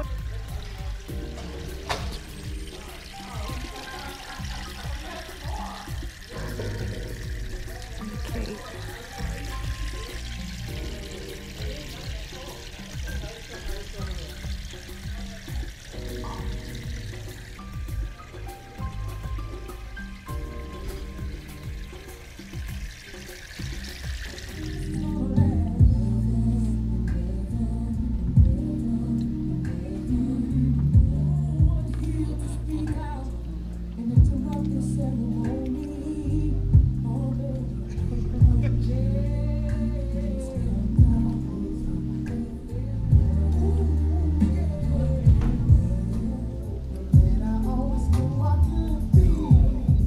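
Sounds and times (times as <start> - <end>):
fountain trickling and splashing: 0.0 - 25.4
background music with bass line: 0.0 - 50.0.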